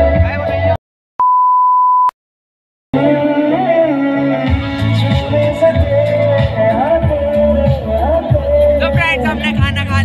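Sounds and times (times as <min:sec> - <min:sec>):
steady test-tone beep: 0:01.2 - 0:02.2
wedding background music: 0:03.0 - 0:10.0.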